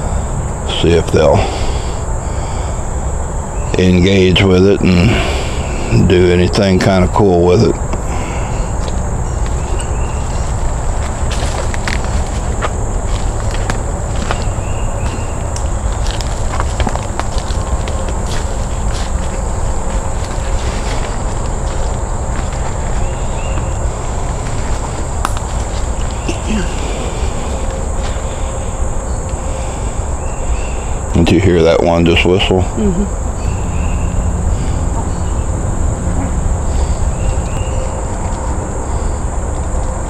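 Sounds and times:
high insect drone: 0:00.0 - 0:40.0
footsteps on leaves and twigs: 0:08.0 - 0:28.8.

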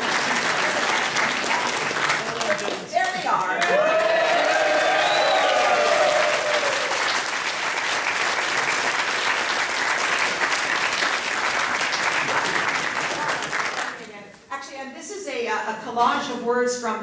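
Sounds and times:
audience applauding: 0:00.0 - 0:14.1.

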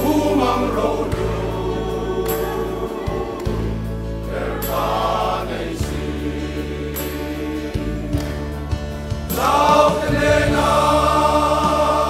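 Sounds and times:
men singing gospel: 0:00.0 - 0:08.5, 0:09.3 - 0:12.0
band accompaniment: 0:00.0 - 0:12.0.

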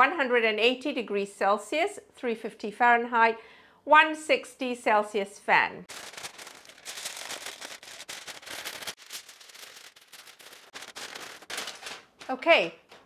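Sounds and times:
aluminium foil crinkling: 0:05.9 - 0:13.0.

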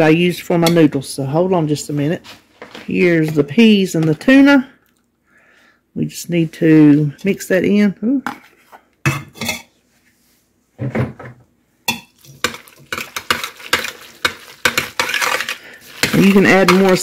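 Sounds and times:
metal spoon scraping a metal pot: 0:11.9 - 0:17.0.

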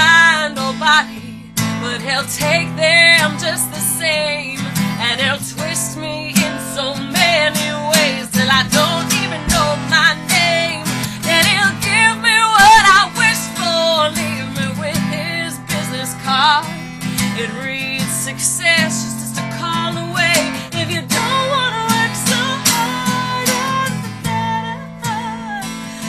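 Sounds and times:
strummed acoustic guitar: 0:00.0 - 0:26.0
woman singing with vibrato: 0:00.0 - 0:26.0.

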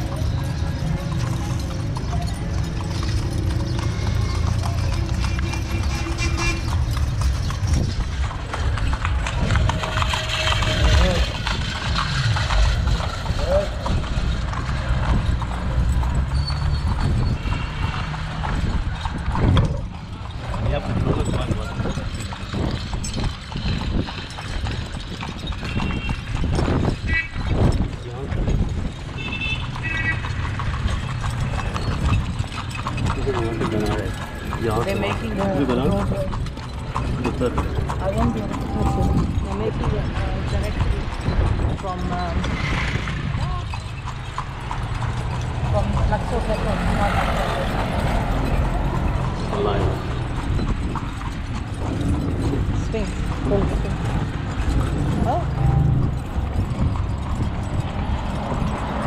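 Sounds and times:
carriage rumbling: 0:00.0 - 0:59.0
hooves clip-clopping on pavement: 0:00.0 - 0:59.0.

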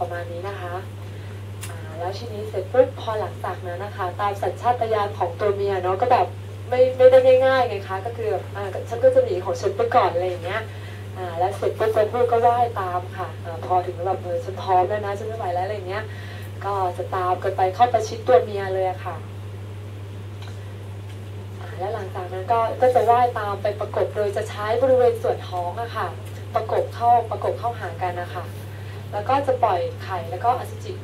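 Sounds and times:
woman speaking into a microphone: 0:00.0 - 0:01.0, 0:01.6 - 0:19.3, 0:21.6 - 0:31.0
steady low hum: 0:00.0 - 0:31.0.

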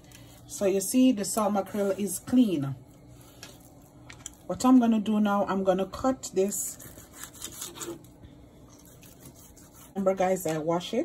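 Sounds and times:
knife sawing through fish: 0:06.7 - 0:08.0, 0:08.8 - 0:10.0.

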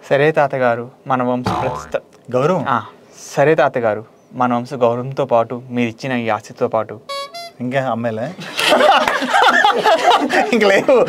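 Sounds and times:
man speaking: 0:01.4 - 0:02.0.

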